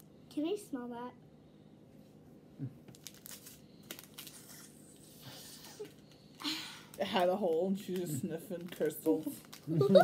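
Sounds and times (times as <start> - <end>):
plastic packet crinkling: 2.9 - 4.6, 6.9 - 10.0.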